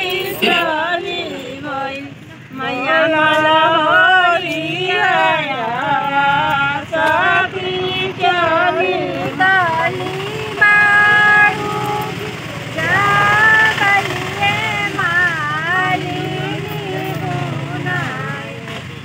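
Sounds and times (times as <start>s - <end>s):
women singing: 0.0s - 19.0s.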